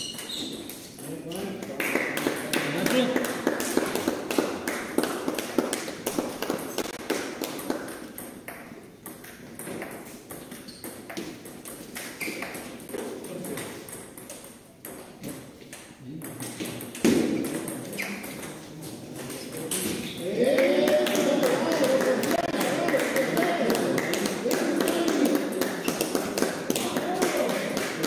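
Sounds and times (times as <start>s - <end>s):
table tennis balls clicking: 0.0s - 4.5s, 5.4s - 20.1s, 22.3s - 28.0s.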